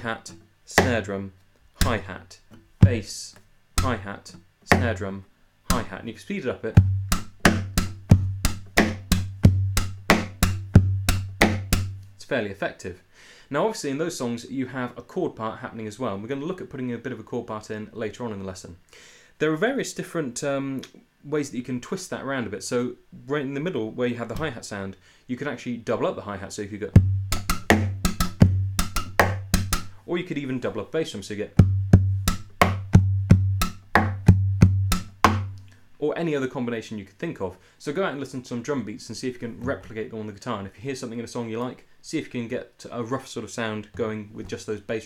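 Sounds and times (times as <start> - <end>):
percussive acoustic guitar beat: 0.3 - 1.1, 1.8 - 3.1, 3.8 - 4.0, 4.7 - 5.0, 5.7 - 6.0, 6.8 - 12.2, 27.0 - 30.0, 31.5 - 35.7
hand thumping guitar body: 1.8 - 3.0, 4.7 - 5.0, 6.8 - 12.0, 27.0 - 29.9, 31.6 - 35.6
guitar strings clicking: 6.8 - 12.2, 27.0 - 30.0, 31.6 - 35.8.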